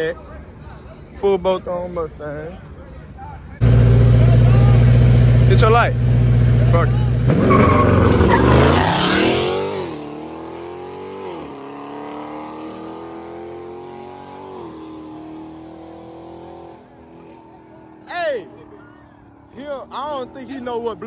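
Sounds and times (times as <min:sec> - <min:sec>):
engines revving and accelerating: 0:03.6 - 0:21.0
tyre squeal: 0:07.3 - 0:09.4.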